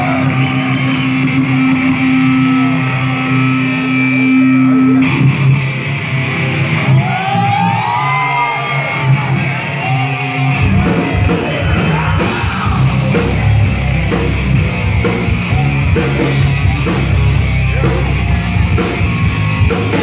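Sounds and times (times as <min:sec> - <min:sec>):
bending guitar notes: 0:00.0 - 0:07.1, 0:12.7 - 0:20.0
rock band playing: 0:00.0 - 0:20.0.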